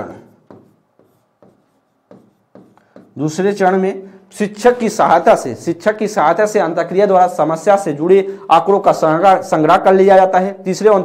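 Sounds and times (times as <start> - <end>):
stylus scratching on touchscreen: 0.0 - 3.2.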